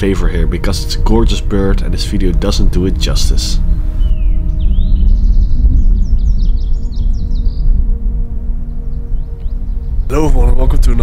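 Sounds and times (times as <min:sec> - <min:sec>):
background music: 0:00.0 - 0:11.0
bird singing high chirps: 0:03.5 - 0:11.0.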